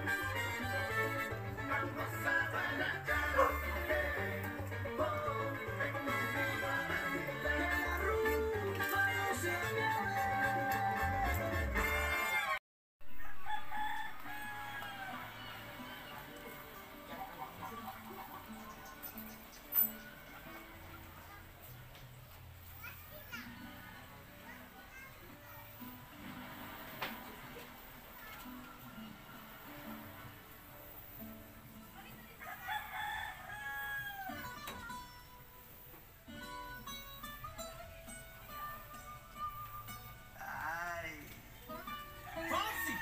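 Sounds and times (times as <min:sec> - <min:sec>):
salsa music: 0:00.0 - 0:12.6
rooster crowing: 0:13.0 - 0:15.7, 0:32.4 - 0:34.6, 0:42.2 - 0:43.0.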